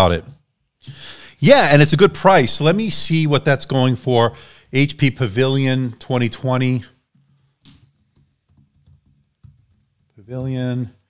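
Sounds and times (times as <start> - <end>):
typing on computer keyboard: 7.7 - 10.6.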